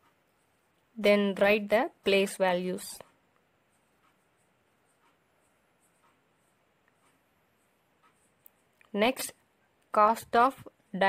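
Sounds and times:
marker pen scratching on paper: 0:01.4 - 0:09.2.

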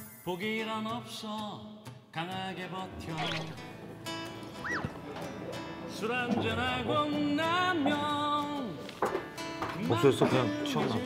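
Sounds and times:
background music: 0:00.0 - 0:11.0
comic whistle-like sound effect: 0:03.1 - 0:03.7, 0:04.6 - 0:04.9.

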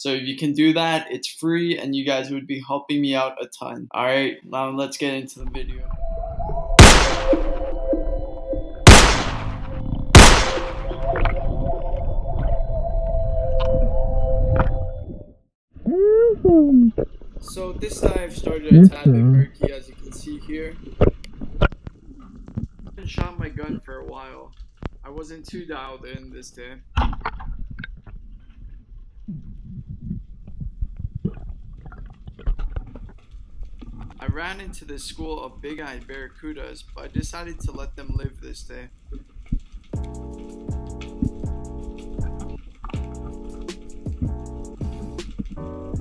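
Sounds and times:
impact hit sound effects: 0:06.8 - 0:07.7, 0:08.9 - 0:11.2
underwater rumble of moving water: 0:09.4 - 0:13.9
short muffled pitched sound: 0:18.7 - 0:19.6
underwater clicks and knocks: 0:29.4 - 0:34.2.

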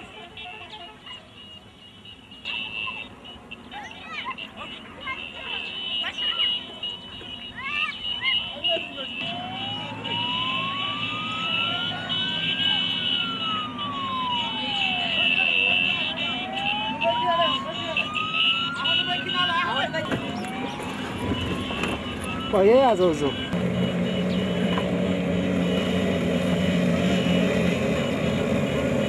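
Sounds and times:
rumble of vehicles in convoy: 0:00.0 - 0:29.0
crowd voices: 0:02.5 - 0:23.6
vehicle siren wailing: 0:03.7 - 0:29.0.

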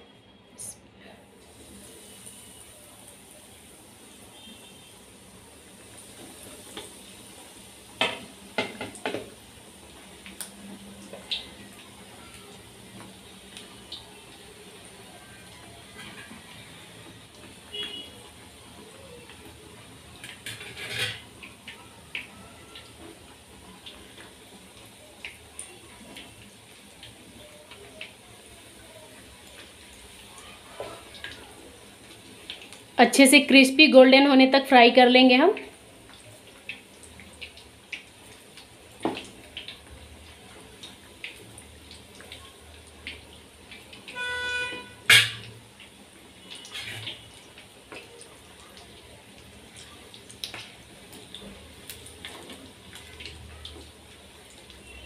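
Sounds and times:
chicken sizzling in hot oil: 0:01.3 - 0:55.0
knocks and clinks against pan: 0:45.1 - 0:45.5.

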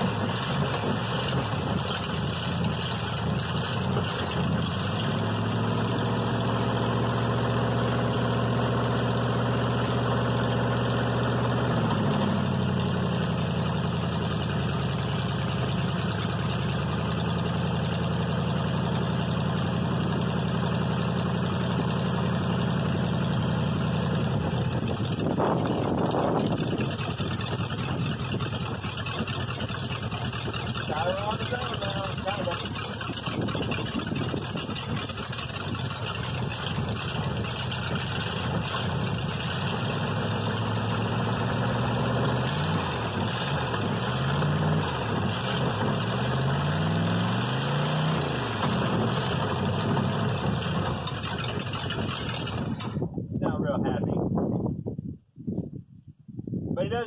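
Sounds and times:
car engine idling: 0:00.0 - 0:53.2.

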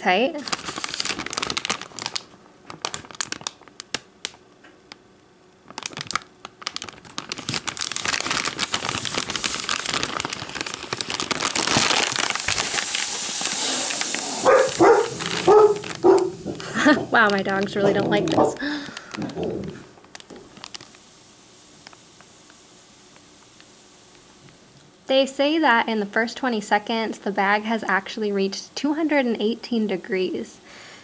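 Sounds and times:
heater pouch sizzling hiss: 0:00.4 - 0:02.2, 0:06.2 - 0:25.7
plastic bag crinkling: 0:00.4 - 0:05.0, 0:05.6 - 0:21.1
dogs barking: 0:14.3 - 0:18.6.

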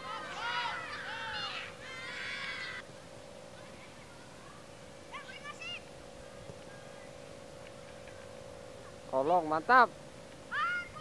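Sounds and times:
children shouting: 0:00.0 - 0:02.8, 0:10.5 - 0:11.0
faint steady hum: 0:00.0 - 0:11.0.

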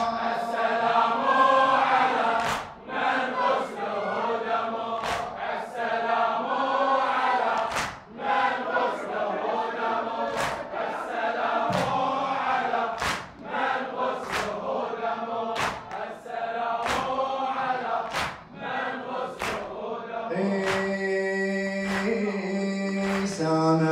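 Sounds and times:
chest-beating slaps: 0:00.0 - 0:00.4, 0:02.4 - 0:02.8, 0:05.0 - 0:05.5, 0:07.5 - 0:08.1, 0:10.3 - 0:10.8, 0:11.7 - 0:12.2, 0:13.0 - 0:13.6, 0:14.2 - 0:14.7, 0:15.6 - 0:16.1, 0:16.8 - 0:17.2, 0:18.0 - 0:18.5, 0:19.4 - 0:19.8, 0:20.6 - 0:21.0, 0:21.9 - 0:22.2, 0:23.0 - 0:23.4
men chanting in unison: 0:00.0 - 0:23.9.

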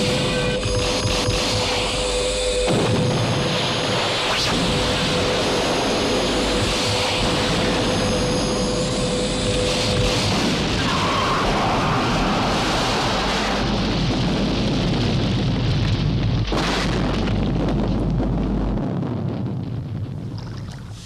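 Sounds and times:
gunfire and explosions rumble: 0:00.0 - 0:21.0.

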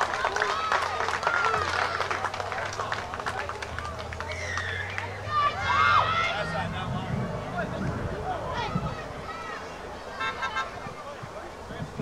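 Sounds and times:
players and spectators shouting: 0:00.0 - 0:11.6.

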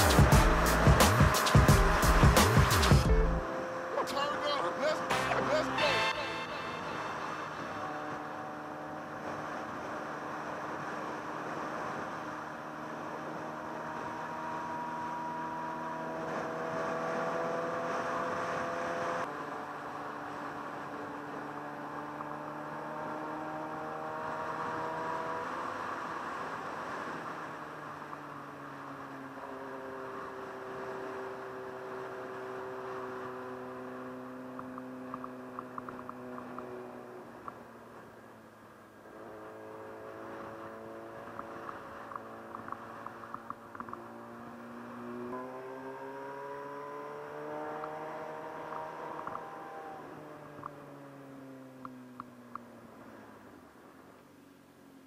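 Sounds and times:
motorcycle engine running: 0:00.0 - 0:04.1.

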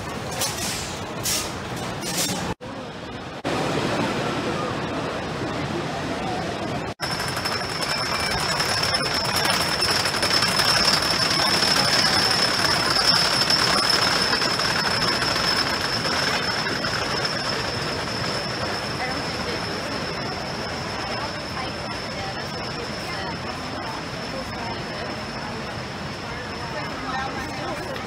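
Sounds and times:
roller coaster rumbling on track: 0:00.0 - 0:28.0
steady high whine: 0:02.5 - 0:28.0.

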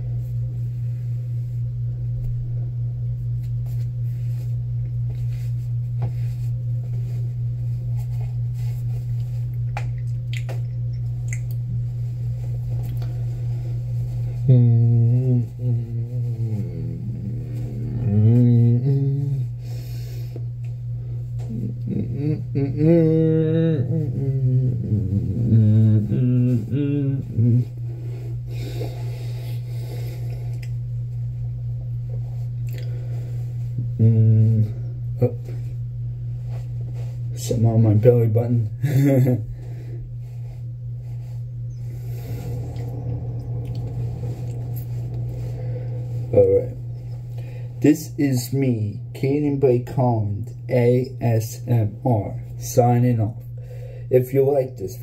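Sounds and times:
steady low hum: 0:00.0 - 0:55.0
man humming a tune: 0:14.2 - 0:19.8, 0:21.4 - 0:28.0, 0:33.8 - 0:35.6, 0:41.8 - 0:48.3.

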